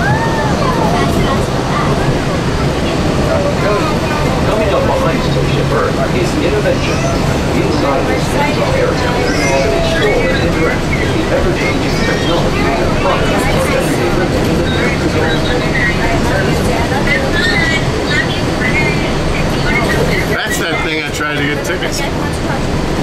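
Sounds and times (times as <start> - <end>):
monorail low rumble: 0.0 - 23.0
people talking: 0.0 - 23.0.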